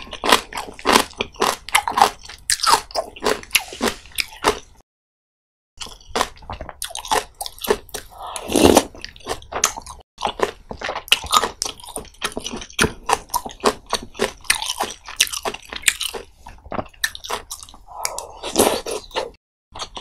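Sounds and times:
wet chewing mouth sounds: 0:05.8 - 0:20.0.

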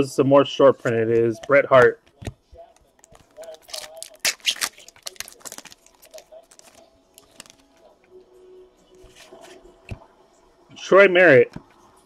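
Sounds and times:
trading cards rustling: 0:00.8 - 0:08.1.

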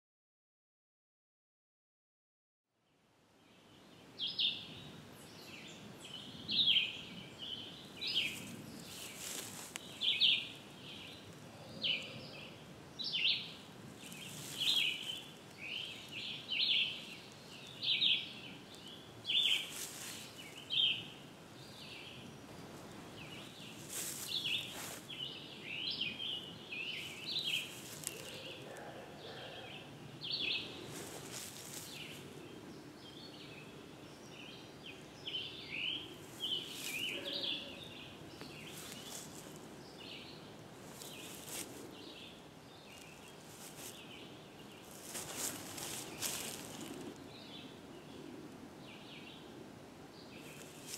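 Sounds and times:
steady outdoor hiss: 0:02.8 - 0:50.9
wild birds chirping: 0:02.9 - 0:50.9.

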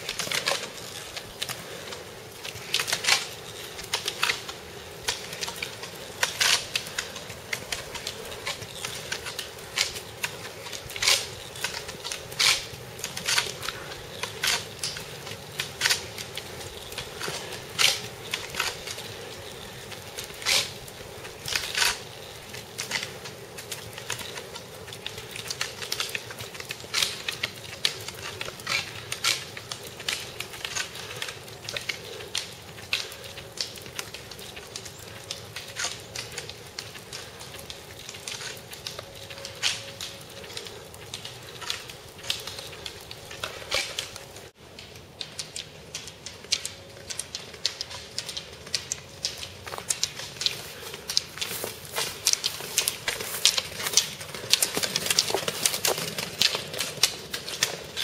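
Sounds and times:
roller-ski wheels rolling: 0:00.0 - 0:58.0
ski pole tips clicking on asphalt: 0:00.0 - 0:58.0.

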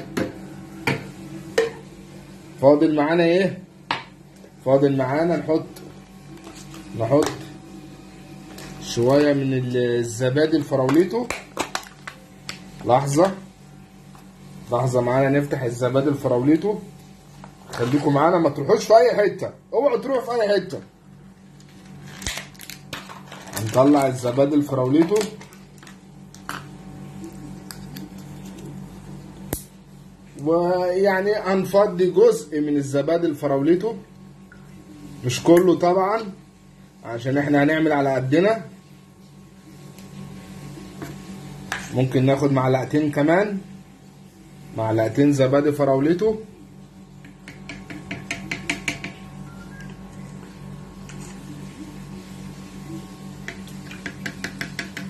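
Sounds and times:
low steady hum: 0:00.0 - 0:55.0
spoon tapping plastic jug: 0:47.2 - 0:49.2, 0:53.4 - 0:55.0.

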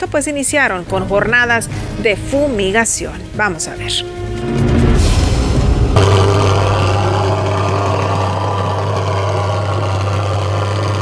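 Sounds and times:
pulse-jet fogger buzzing: 0:04.2 - 0:11.0.

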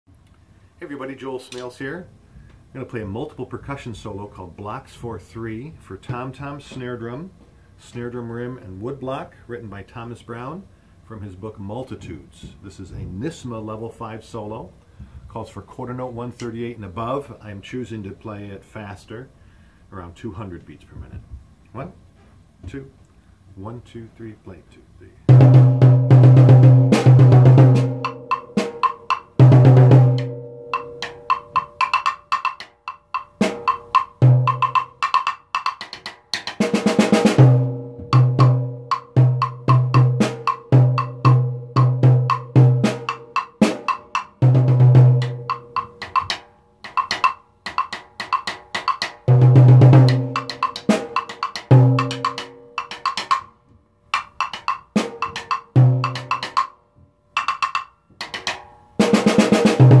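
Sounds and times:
snare drum rolls: 0:25.3 - 0:53.5, 0:54.2 - 0:56.7, 0:57.6 - 1:00.0
tom-tom drum: 0:25.3 - 0:53.5, 0:54.2 - 0:56.7, 0:57.4 - 1:00.0
drumstick clicks on rim and wood block: 0:30.8 - 0:36.6, 0:45.5 - 0:49.3, 0:50.4 - 0:53.5, 0:54.2 - 0:56.7, 0:57.4 - 0:58.7.

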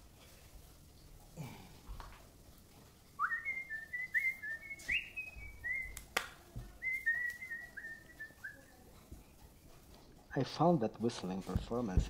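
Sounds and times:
man whistling a tune: 0:03.2 - 0:06.0, 0:06.8 - 0:08.6.

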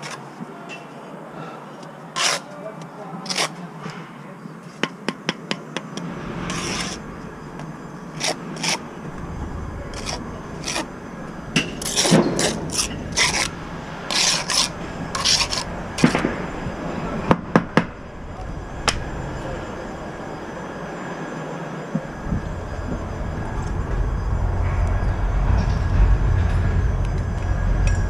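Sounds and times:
trowel scraping mortar: 0:00.0 - 0:00.2, 0:02.1 - 0:02.6, 0:03.2 - 0:03.6, 0:06.5 - 0:07.0, 0:08.2 - 0:08.8, 0:09.9 - 0:10.9, 0:11.6 - 0:16.2.

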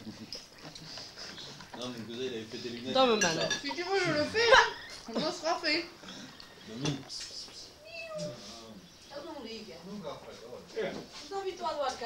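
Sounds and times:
kitten meowing: 0:07.8 - 0:08.4.

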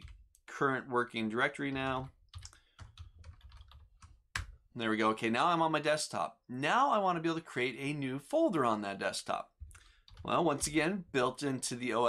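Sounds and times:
keyboard typing: 0:00.0 - 0:00.2, 0:01.7 - 0:04.6, 0:09.6 - 0:10.9.

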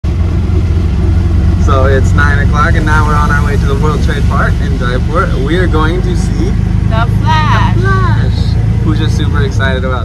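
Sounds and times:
auto-rickshaw engine rumble: 0:00.0 - 0:10.0
man talking: 0:01.6 - 0:06.6, 0:08.4 - 0:10.0.

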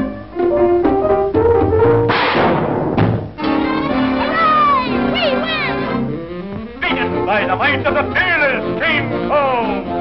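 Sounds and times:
orchestral cartoon music: 0:00.0 - 0:02.1, 0:03.4 - 0:10.0
brass held notes climbing: 0:03.4 - 0:10.0.

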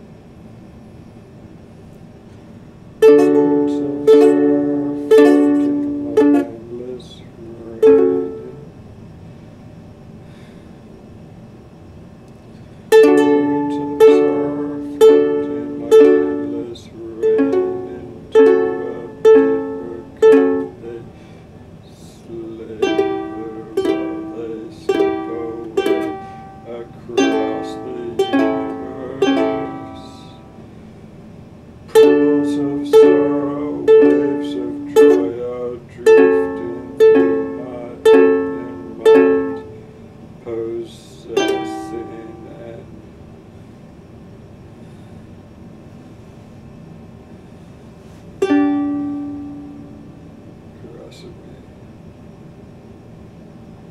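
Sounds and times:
ukulele strumming chords: 0:03.0 - 0:08.7, 0:12.9 - 0:30.9, 0:31.9 - 0:39.9, 0:40.5 - 0:43.0, 0:48.4 - 0:50.4.

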